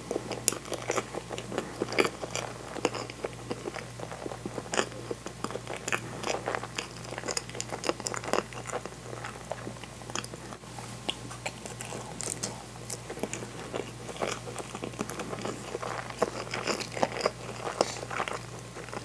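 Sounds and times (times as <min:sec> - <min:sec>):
steady low hum: 0:00.0 - 0:19.0
wet chewing clicks and smacks: 0:00.0 - 0:19.0.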